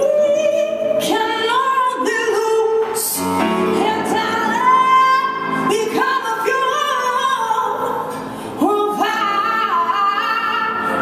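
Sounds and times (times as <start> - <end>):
woman singing into a microphone: 0.0 - 11.0.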